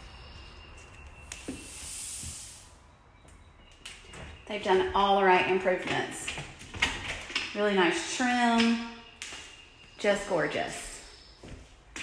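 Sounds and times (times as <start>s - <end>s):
soft hiss: 1.2s - 2.8s.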